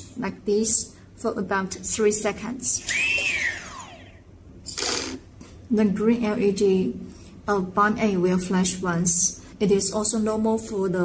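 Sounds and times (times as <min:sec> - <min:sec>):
motor whine spinning up and down: 0:02.6 - 0:05.3
short hiss: 0:04.7 - 0:05.2.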